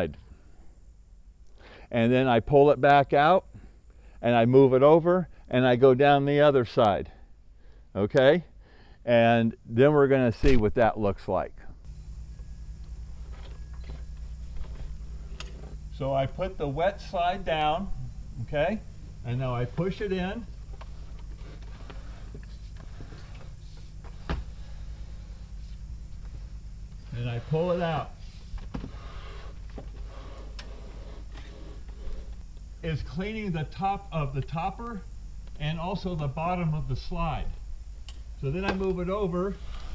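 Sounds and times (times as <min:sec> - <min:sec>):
low steady rumble: 0:00.0 - 0:39.9
steady low hum: 0:00.0 - 0:39.9.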